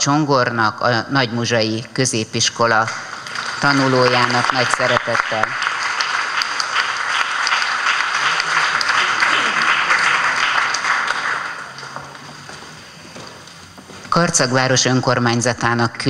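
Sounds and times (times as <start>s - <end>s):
audience applauding: 3.1s - 13.5s.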